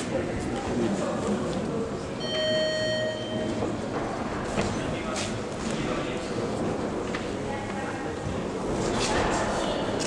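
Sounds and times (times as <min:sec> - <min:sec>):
murmur of crowd: 0:00.0 - 0:10.0
boxing ring bell: 0:02.2 - 0:03.5.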